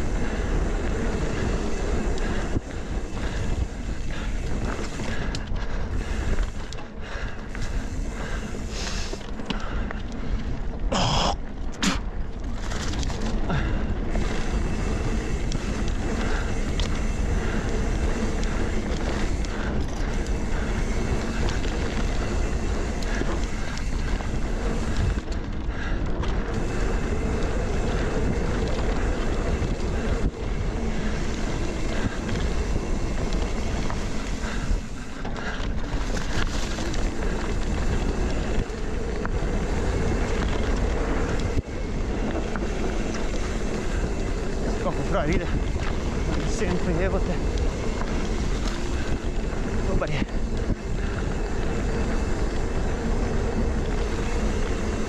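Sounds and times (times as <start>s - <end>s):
bike tyres on dirt trail: 0.0s - 55.0s
bike knocks and rattles: 11.0s - 55.0s.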